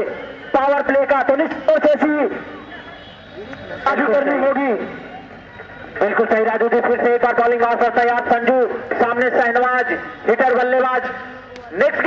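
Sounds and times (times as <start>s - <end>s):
man commentating: 0.0s - 2.6s, 3.7s - 5.0s, 6.0s - 12.0s
faint hubbub of voices: 0.0s - 12.0s.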